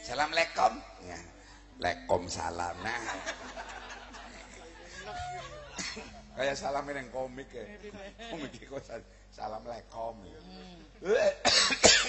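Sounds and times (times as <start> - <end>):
man's voice: 0.0 - 12.0
man coughing into a microphone: 11.1 - 12.0.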